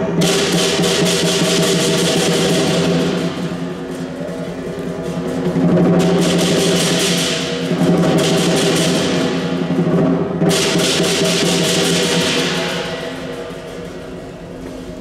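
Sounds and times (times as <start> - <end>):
crashing cymbals: 0.0 - 14.9
big drum beating fast: 0.0 - 15.0.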